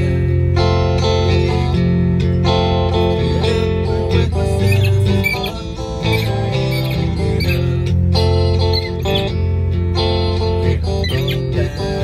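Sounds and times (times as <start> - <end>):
guitar chords and notes: 0.0 - 12.0
sustained low bass notes: 0.0 - 12.0.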